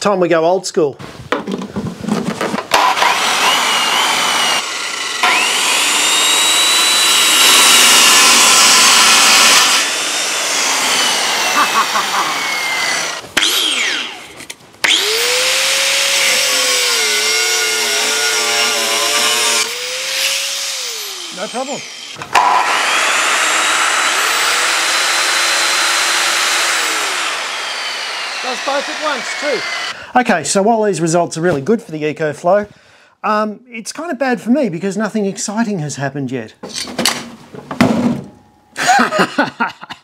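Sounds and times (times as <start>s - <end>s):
angle grinder whining: 2.7s - 30.0s
circular saw cutting wood: 2.7s - 30.0s.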